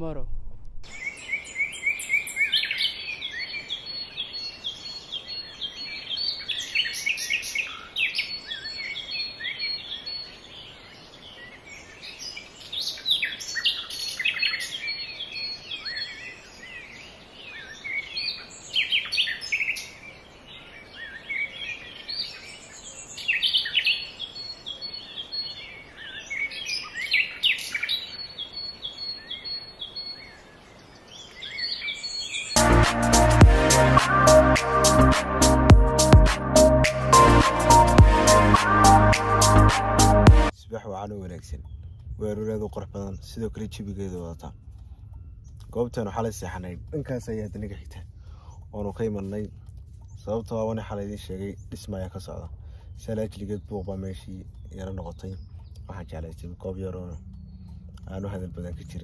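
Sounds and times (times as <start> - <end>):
small birds chirping: 0.9 - 59.0.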